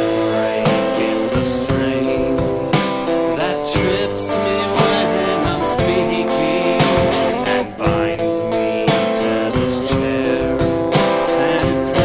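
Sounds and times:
drum kit: 0:00.0 - 0:12.0
electric guitar chords: 0:00.0 - 0:12.0.

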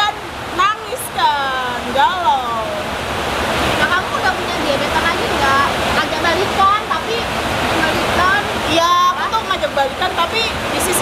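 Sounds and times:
people talking: 0:00.0 - 0:02.9, 0:03.8 - 0:11.0
steady rain rushing: 0:00.0 - 0:11.0.

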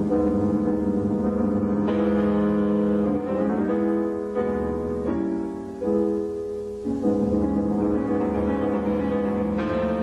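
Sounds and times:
solo piano chords: 0:00.0 - 0:10.0.

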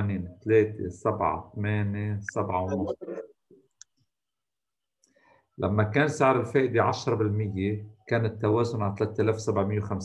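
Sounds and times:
spoken word: 0:02.2 - 0:03.3.

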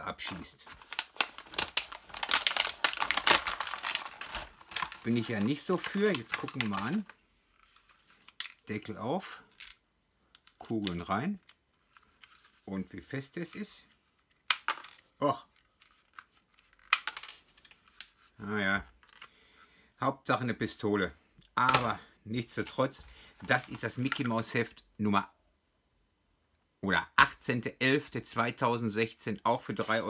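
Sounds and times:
plastic packaging crinkling: 0:00.0 - 0:08.9.

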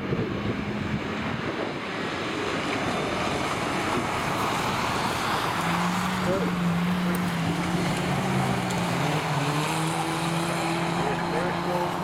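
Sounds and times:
race car engines: 0:00.0 - 0:12.0
wind on microphone: 0:00.0 - 0:12.0.

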